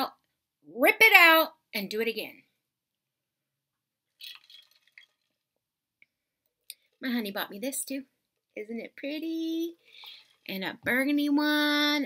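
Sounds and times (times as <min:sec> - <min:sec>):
person slurping a drink: 0:04.2 - 0:05.3, 0:09.8 - 0:10.5.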